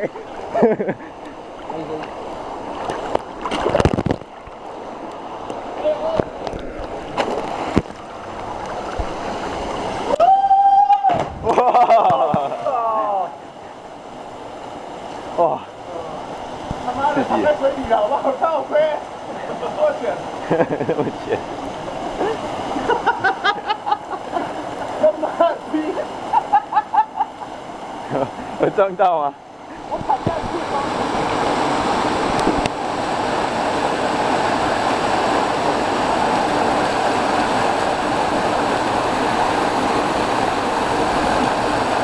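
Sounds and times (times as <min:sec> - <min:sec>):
water rushing: 0:00.0 - 0:42.0.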